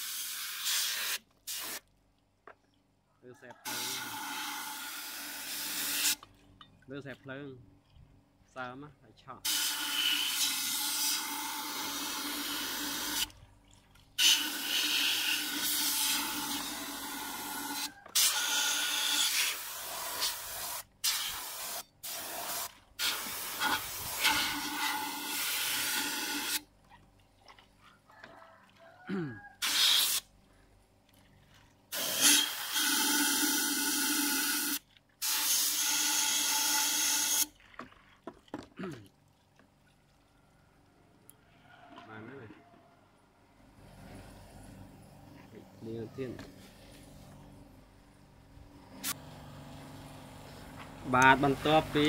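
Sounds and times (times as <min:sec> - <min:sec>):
compressed air hissing bursts: 0:00.0 - 0:01.8, 0:04.4 - 0:06.2, 0:14.2 - 0:26.6, 0:29.6 - 0:30.2, 0:31.9 - 0:37.4.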